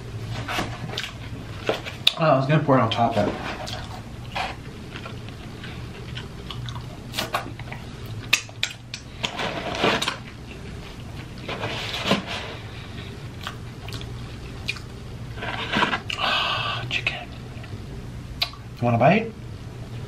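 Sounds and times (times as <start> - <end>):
steady low hum: 0.0 - 20.0
chewing and biting fried snacks: 3.7 - 9.4, 13.4 - 15.0
mouth clicks: 18.4 - 18.6.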